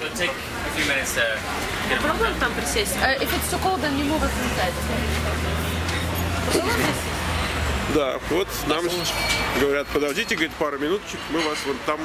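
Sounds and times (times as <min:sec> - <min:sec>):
vehicle engine humming: 0:00.0 - 0:11.1.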